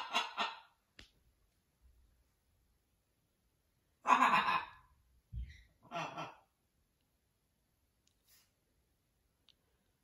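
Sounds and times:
macaw breathy vocal sounds: 0:04.0 - 0:04.9.

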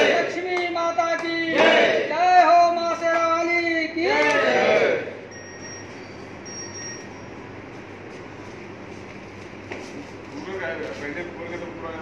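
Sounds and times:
factory hall background noise: 0:00.0 - 0:12.0
faint high metallic ringing: 0:05.3 - 0:07.8.

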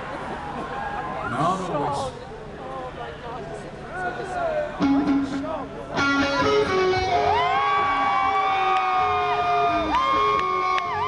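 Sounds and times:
electric guitar bending notes: 0:04.8 - 0:08.0, 0:09.0 - 0:11.0
crowd cheering: 0:07.0 - 0:11.0.

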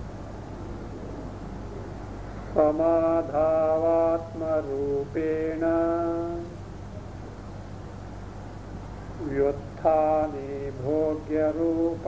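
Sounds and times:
man chanting: 0:02.5 - 0:06.6, 0:09.2 - 0:12.0.

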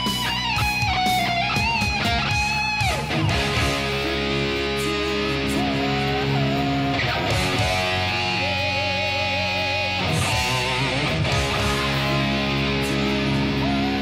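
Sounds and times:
distorted electric guitar: 0:00.0 - 0:14.0
heavy metal backing track: 0:00.0 - 0:14.0.

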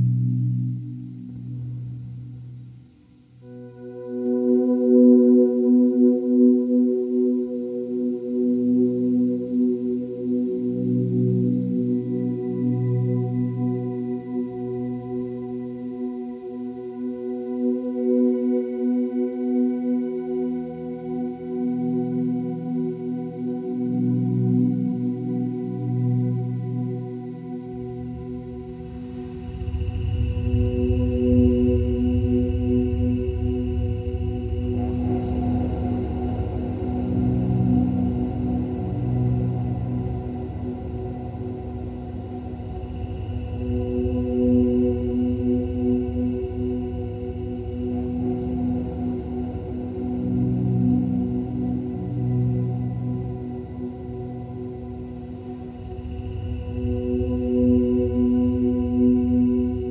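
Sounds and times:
electric guitar drone through effects: 0:00.0 - 0:02.8, 0:30.2 - 0:59.9.

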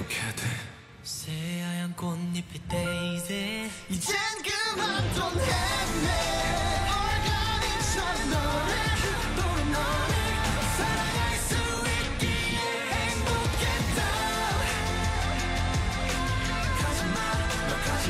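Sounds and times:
male group singing pop song: 0:00.1 - 0:18.0
pop backing track with beat: 0:02.7 - 0:18.0.

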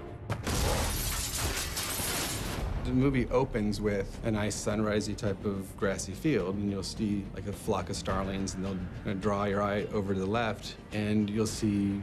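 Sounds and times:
glass pane cracking and shattering: 0:00.4 - 0:02.6.

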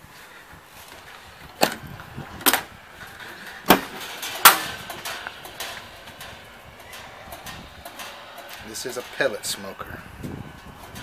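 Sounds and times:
metallic clunks of smoker door: 0:01.5 - 0:09.5.

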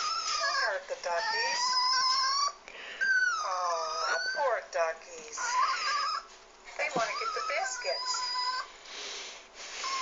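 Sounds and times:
dog whining: 0:00.0 - 0:04.6, 0:05.4 - 0:08.8, 0:09.7 - 0:10.0.

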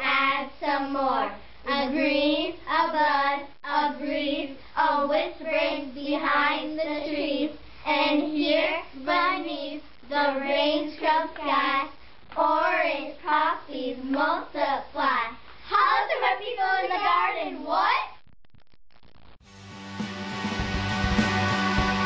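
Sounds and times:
girls singing in unison: 0:00.0 - 0:15.0.

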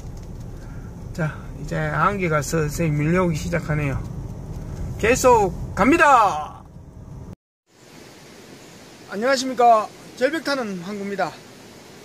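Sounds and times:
car road noise: 0:00.0 - 0:07.4
steady outdoor hiss: 0:00.0 - 0:12.0.

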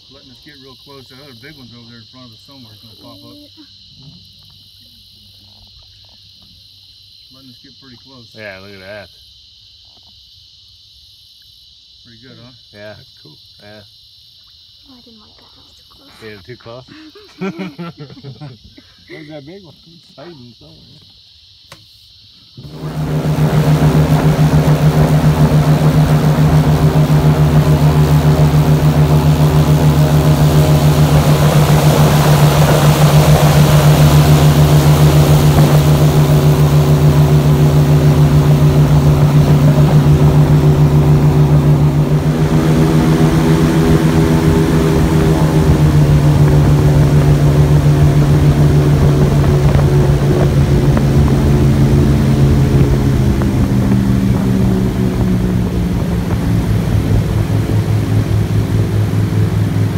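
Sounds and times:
airboat engine and propeller: 0:22.6 - 0:59.9.

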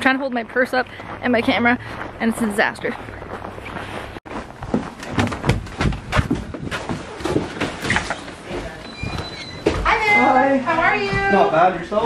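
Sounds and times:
footsteps: 0:00.0 - 0:11.6.

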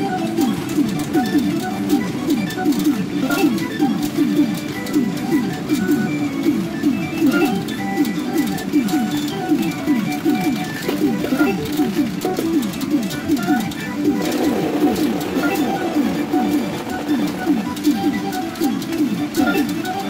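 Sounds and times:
quick falling notes music: 0:00.0 - 0:20.0.

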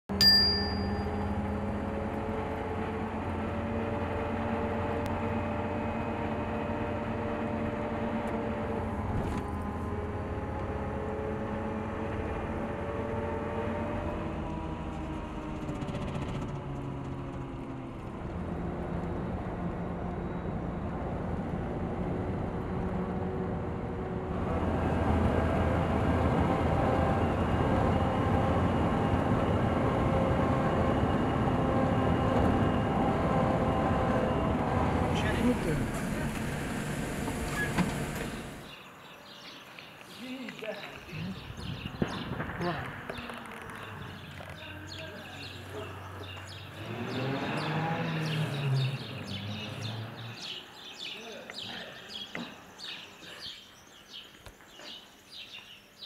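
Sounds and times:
car engine: 0:00.7 - 0:38.7, 0:41.3 - 0:50.9
road noise inside car: 0:01.0 - 0:38.7.

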